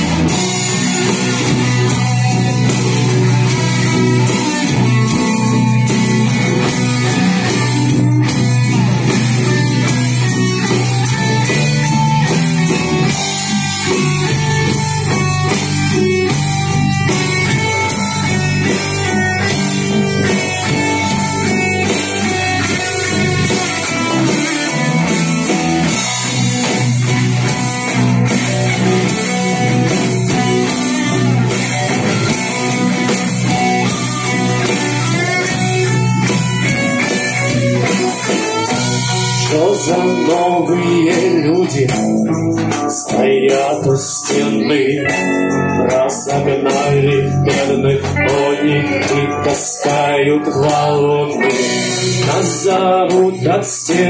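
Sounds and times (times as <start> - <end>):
drum beat: 0.0 - 54.0
electric and acoustic guitars: 0.0 - 54.0.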